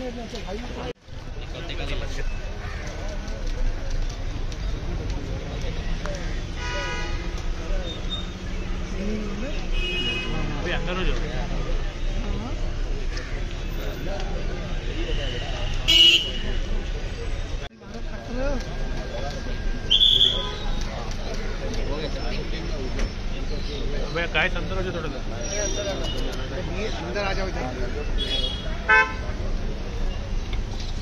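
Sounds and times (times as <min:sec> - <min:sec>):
crowd chatter: 0:00.0 - 0:31.0
vehicle horn honk: 0:06.6 - 0:07.3, 0:09.7 - 0:10.6, 0:14.9 - 0:16.7, 0:28.2 - 0:29.3.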